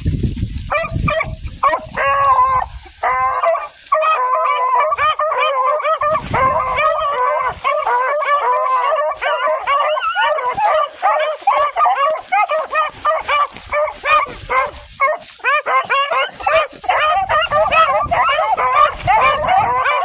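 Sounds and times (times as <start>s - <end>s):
hounds baying: 0.6s - 20.0s.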